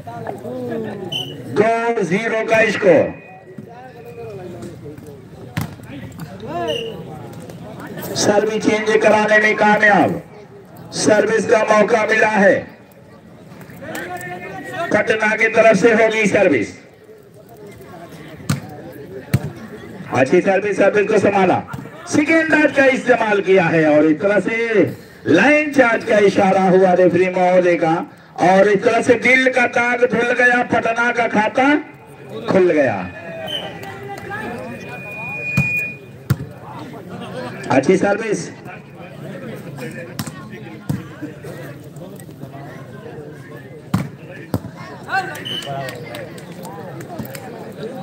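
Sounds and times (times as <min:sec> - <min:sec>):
low crowd voices: 0:00.0 - 0:48.0.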